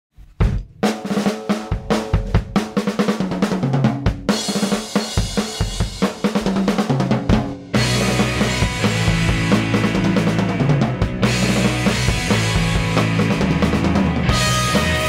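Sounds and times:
drum kit: 0.1s - 15.0s
band playing: 7.7s - 15.0s
bass line: 7.7s - 15.0s.

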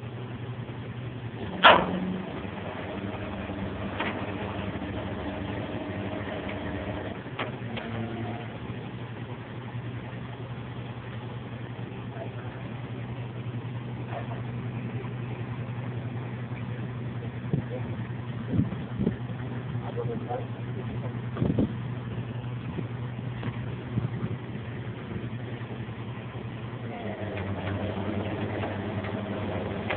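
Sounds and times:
truck engine idling: 0.0s - 29.9s
higher hum: 0.9s - 29.9s.

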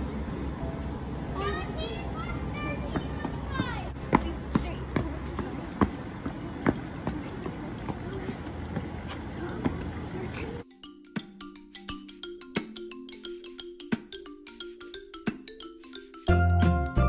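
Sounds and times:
child hopping on concrete: 1.8s - 10.6s.

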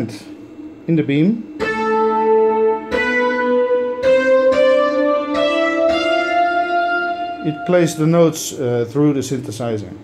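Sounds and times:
synthesizer notes stepping upward: 1.4s - 8.5s.

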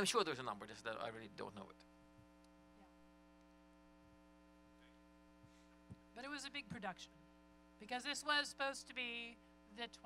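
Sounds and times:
faint electrical mains hum: 0.0s - 10.0s.

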